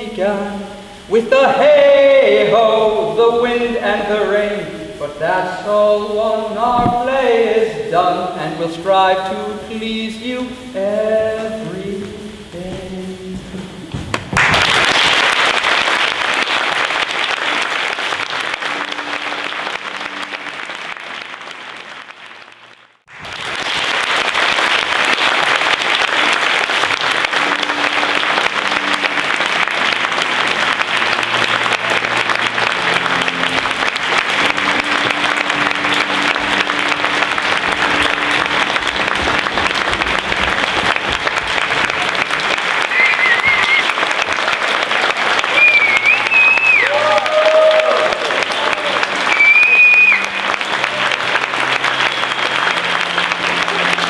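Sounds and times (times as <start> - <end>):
audience applauding: 13.9 - 54.0.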